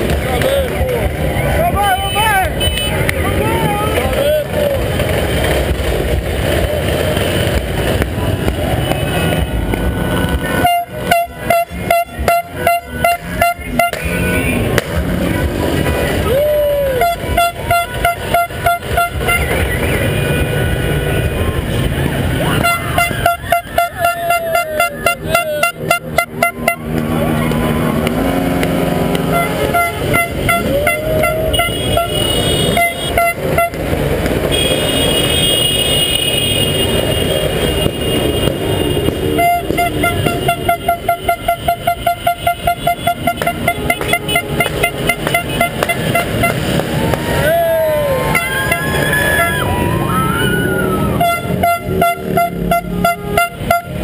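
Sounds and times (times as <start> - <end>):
vehicle horns honking: 0.0 - 5.2, 6.8 - 54.0
traffic noise: 0.0 - 54.0.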